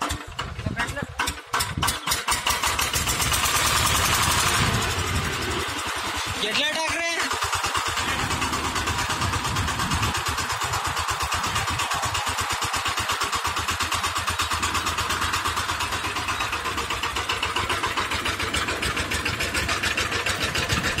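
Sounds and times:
diesel engine chugging: 0.0 - 21.0.

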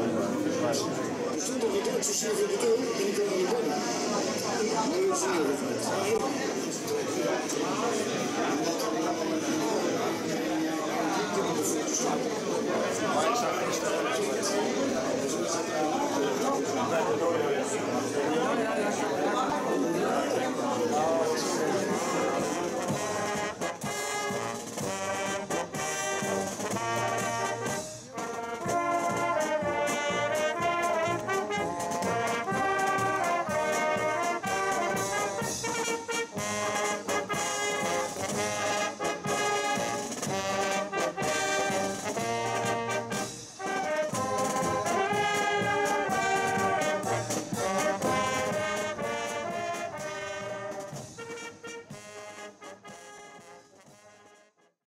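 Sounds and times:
brass band playing: 20.3 - 54.8.

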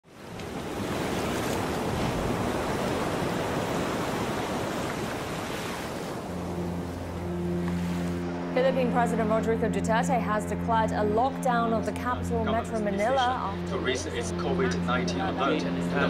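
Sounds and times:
ocean surf washing: 0.0 - 9.7.

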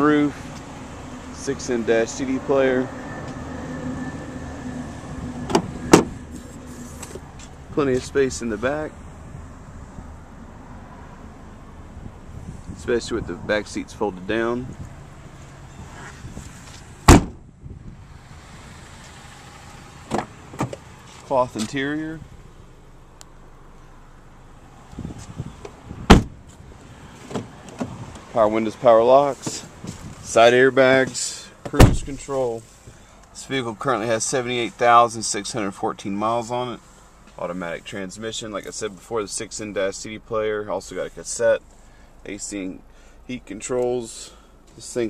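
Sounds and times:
loud sharp thump: 17.1 - 17.4, 26.1 - 26.4, 31.8 - 32.2.

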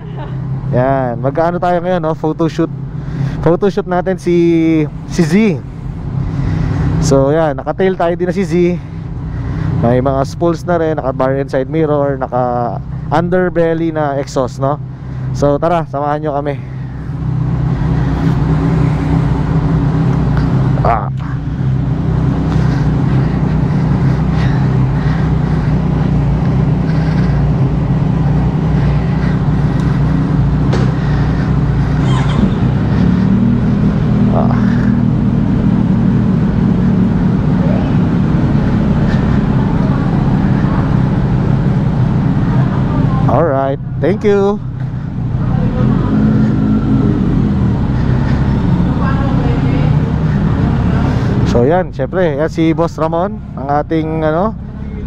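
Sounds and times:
motorcycle engine idling: 16.5 - 55.0.

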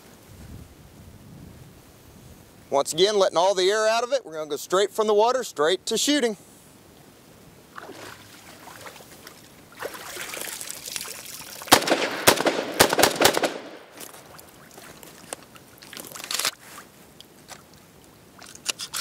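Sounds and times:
water running and splashing: 7.7 - 11.8, 14.1 - 16.5
rifle shots: 11.7 - 14.0.

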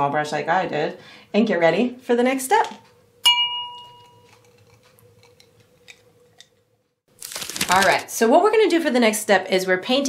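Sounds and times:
glass ding: 3.2 - 4.4.

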